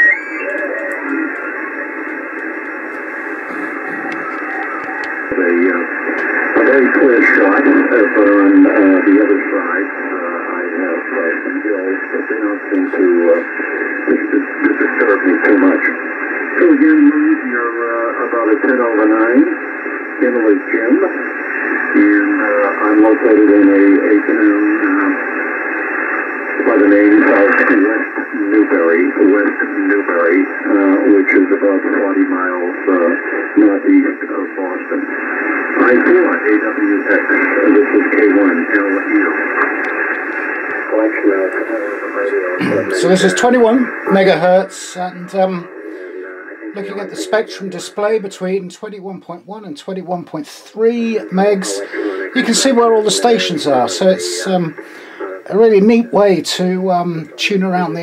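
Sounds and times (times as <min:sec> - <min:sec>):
radio band noise hiss: 0:00.0 - 0:58.0
thin radio voice talking: 0:00.0 - 0:58.0.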